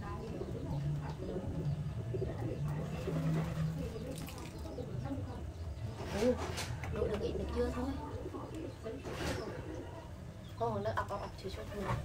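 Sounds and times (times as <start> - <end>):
low voices: 0.0 - 12.0
bird cooing: 0.1 - 5.2.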